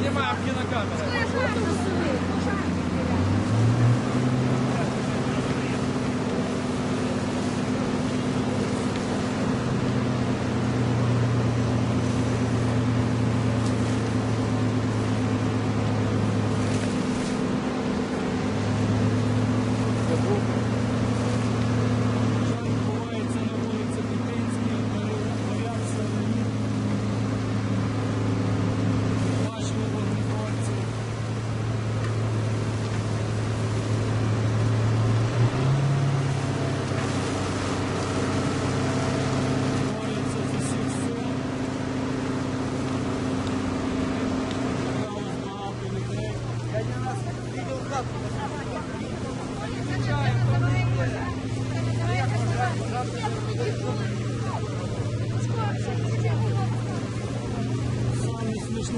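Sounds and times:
fire engine motor running: 0.0s - 58.9s.

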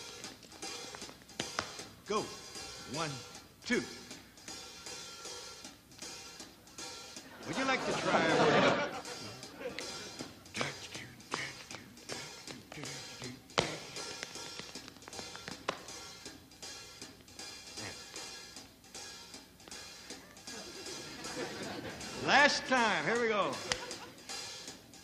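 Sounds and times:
faint background music: 0.0s - 25.0s
dance shoes tapping on stage: 0.3s - 1.9s, 13.5s - 16.0s.

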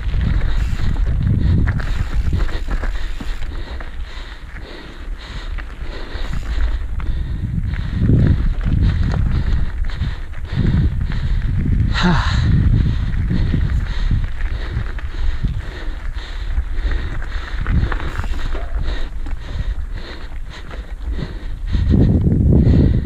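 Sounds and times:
tyres rolling over dirt and stones: 0.0s - 11.9s, 12.5s - 21.2s
bike rattling and clicking: 0.0s - 23.0s
wind rumbling on microphone: 0.0s - 23.0s.

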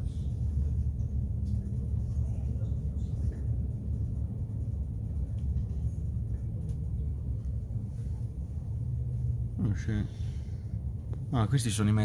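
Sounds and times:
train cabin rumble: 0.0s - 12.0s.

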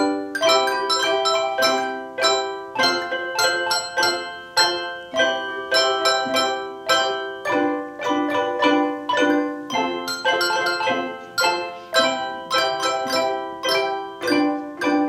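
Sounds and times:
handbell chords ringing: 0.0s - 15.0s.

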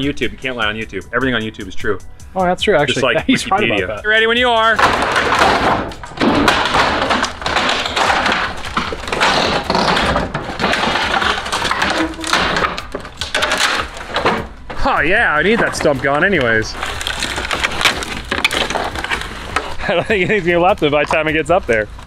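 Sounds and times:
wooden boards cracking and splintering: 3.8s - 22.0s.

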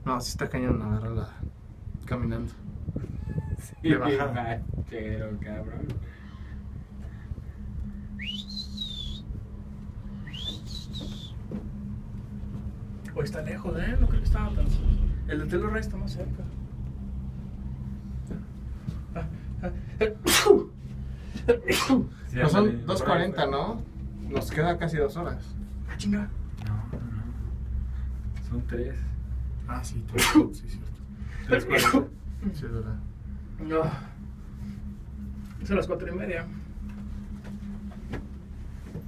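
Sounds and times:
steady low hum: 0.0s - 39.0s
person sneezing: 20.2s - 20.7s, 21.6s - 22.1s, 31.7s - 32.1s.

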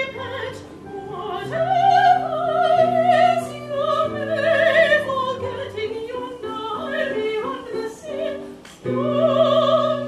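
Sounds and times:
operatic singing: 0.0s - 10.0s
piano accompaniment: 0.0s - 10.0s.

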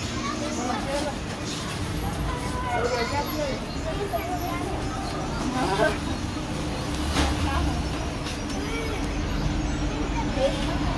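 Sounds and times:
faint voices: 0.0s - 10.9s.

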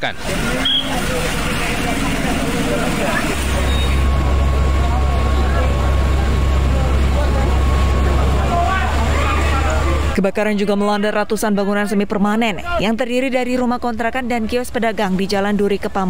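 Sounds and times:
crowd calling and talking: 0.0s - 16.0s
fire low rumble: 0.2s - 10.2s.

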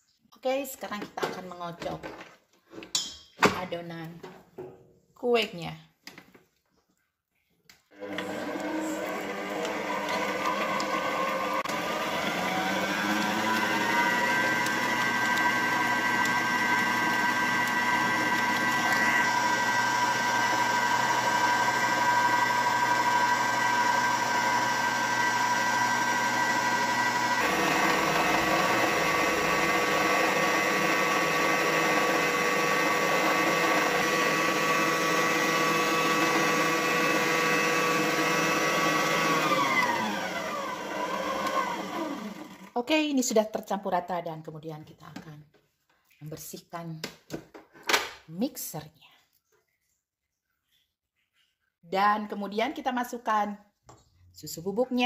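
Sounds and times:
electric stand mixer whisking: 8.0s - 42.7s.

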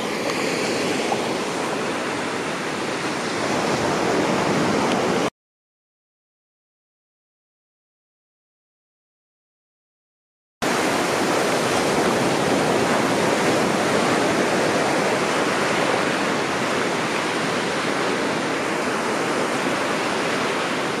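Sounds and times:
surf washing on sandy beach: 0.0s - 5.3s, 10.6s - 21.0s.

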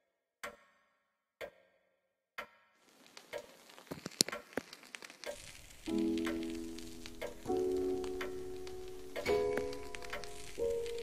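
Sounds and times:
clock ticking: 0.4s - 0.7s, 5.2s - 11.0s
irregular crackling and clicks: 2.8s - 11.0s
steady hiss: 2.8s - 11.0s.

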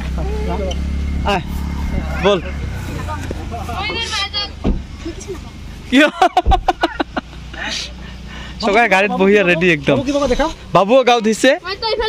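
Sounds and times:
car engine idling: 0.0s - 12.0s
child's high voice: 3.8s - 4.6s, 11.6s - 12.0s
thump: 4.6s - 4.9s, 6.4s - 6.7s.

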